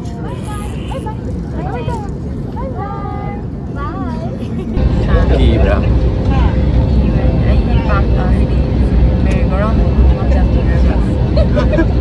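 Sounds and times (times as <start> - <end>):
airliner cabin rumble: 0.0 - 12.0.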